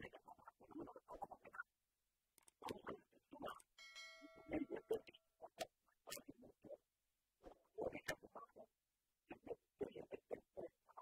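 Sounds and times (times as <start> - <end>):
bell-like chime ringing: 3.8 - 5.3.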